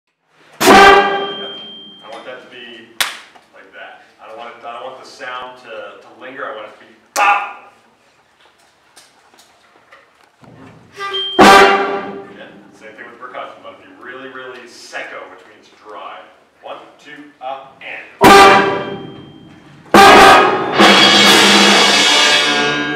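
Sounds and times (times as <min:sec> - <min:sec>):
sharp knock: 0:00.6 - 0:01.6
concert band playing a chord: 0:18.2 - 0:22.9.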